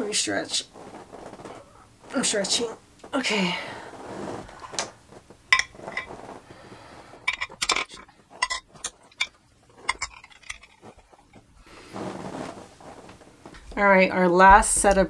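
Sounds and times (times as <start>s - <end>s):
brushes clinking on ceramic plate: 5.5s - 6.2s, 7.3s - 11.5s.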